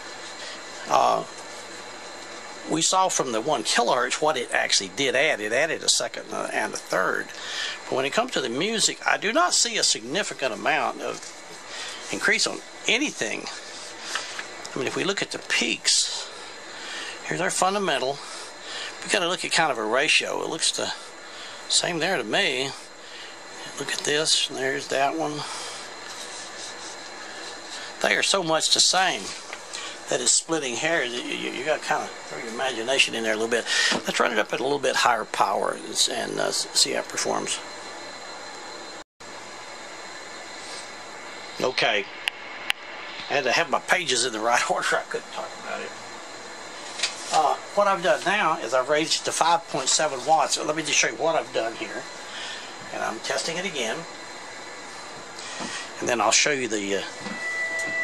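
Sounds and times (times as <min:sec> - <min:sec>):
faint high-pitched whine: 0:00.0 - 0:39.0, 0:40.0 - 0:58.0
room hiss: 0:00.0 - 0:58.0.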